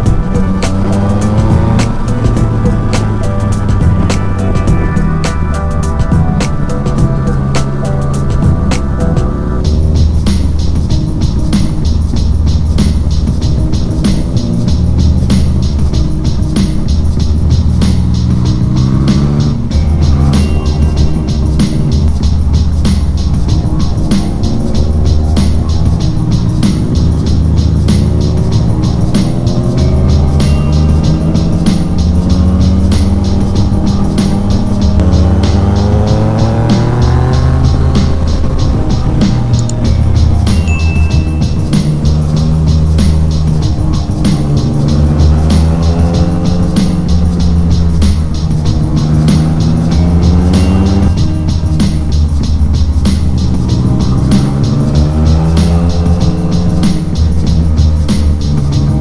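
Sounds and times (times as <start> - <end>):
background music with steady beat: 0.0 - 59.0
motorcycle engine revving: 0.0 - 59.0.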